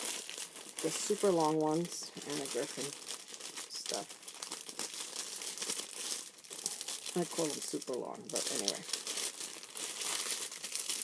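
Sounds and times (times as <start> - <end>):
plastic bag crinkling: 0.0 - 11.0.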